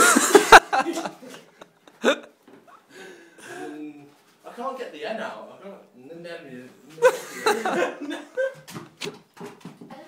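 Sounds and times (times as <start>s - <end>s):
person laughing: 7.0s - 8.7s.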